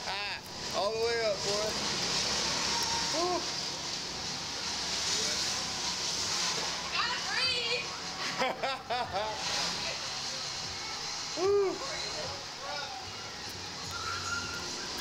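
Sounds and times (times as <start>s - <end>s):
steady hiss: 0.0s - 15.0s
riders exclaiming: 2.5s - 3.6s.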